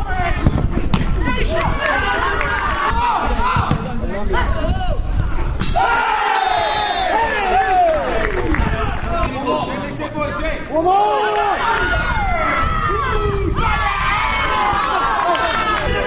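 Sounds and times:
wind rumbling on microphone: 0.0s - 5.9s, 6.6s - 10.7s, 11.6s - 16.0s
players and spectators shouting: 1.2s - 5.1s, 5.7s - 16.0s.

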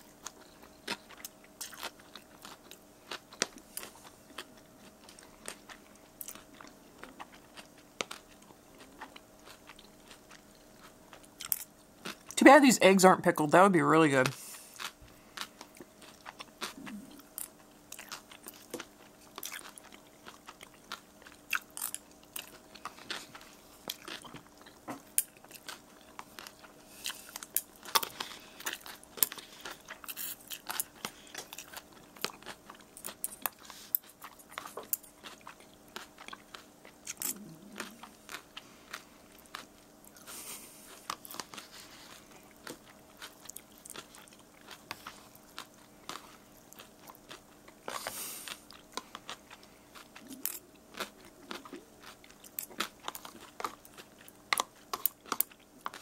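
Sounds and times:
person chewing noodles: 0.0s - 12.4s, 14.3s - 56.0s
faint steady hum: 0.0s - 56.0s.

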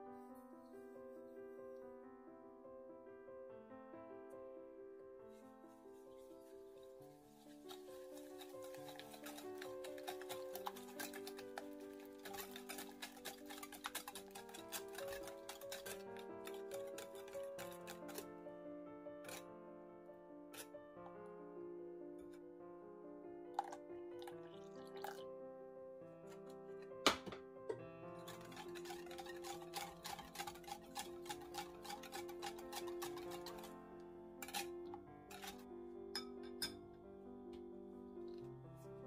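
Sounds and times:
background music: 4.2s - 39.0s
whisk beating batter in glass bowl: 7.4s - 18.4s, 28.1s - 35.6s.

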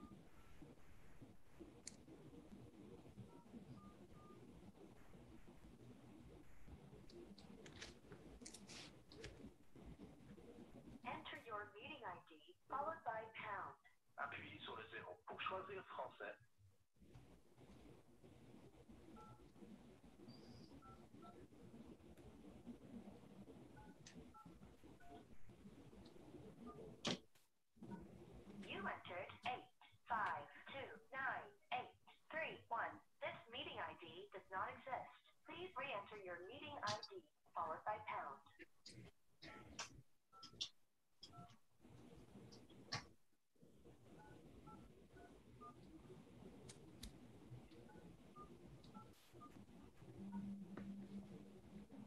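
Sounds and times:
low background noise: 0.0s - 27.2s, 27.8s - 52.0s.

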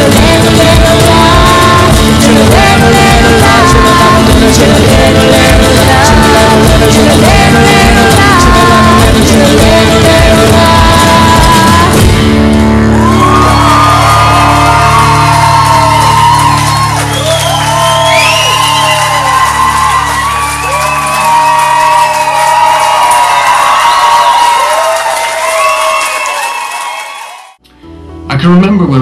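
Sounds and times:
people singing and whooping: 0.0s - 12.1s, 12.8s - 27.5s
drum strokes: 0.0s - 12.5s.

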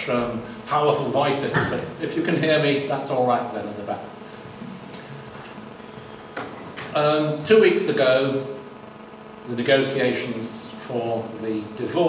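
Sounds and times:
low hiss and hum: 0.0s - 12.0s.

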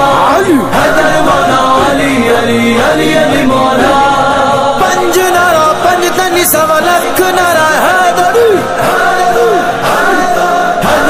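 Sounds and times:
music: 0.0s - 11.0s
voices singing a chant: 0.0s - 11.0s.

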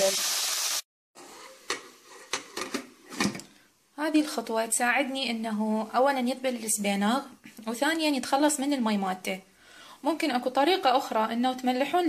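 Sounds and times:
spinach sizzling in a pan: 0.0s - 0.9s.

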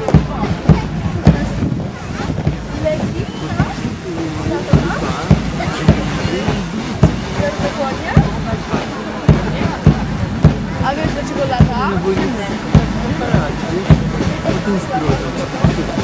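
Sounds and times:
marching footsteps thudding: 0.0s - 16.0s
onlookers chattering: 0.0s - 16.0s.

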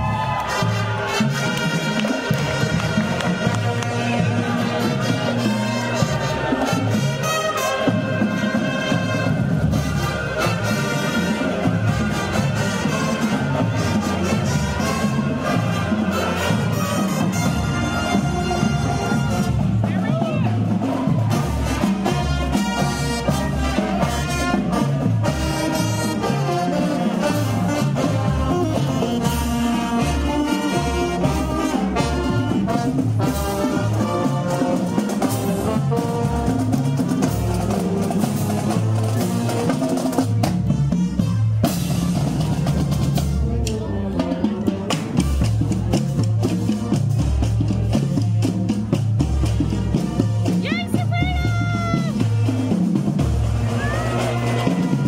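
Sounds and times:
drumline with bass drums: 0.0s - 55.0s
saxophones and brass: 0.0s - 55.0s.

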